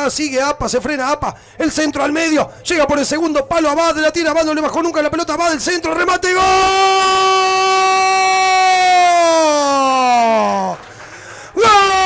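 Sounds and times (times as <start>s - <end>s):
commentator shouting goal: 1.8s - 10.8s, 11.6s - 12.0s.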